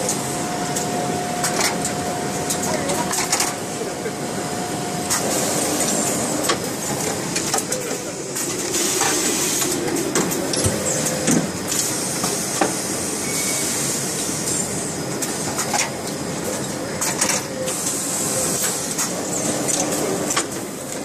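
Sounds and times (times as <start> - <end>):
machinery hiss and hum: 0.0 - 21.0.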